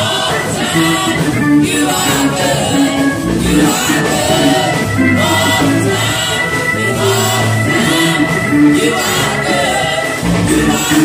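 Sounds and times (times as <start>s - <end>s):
gospel group singing: 0.0s - 11.0s
keyboard chords: 0.0s - 11.0s
sustained low bass note: 1.1s - 8.4s.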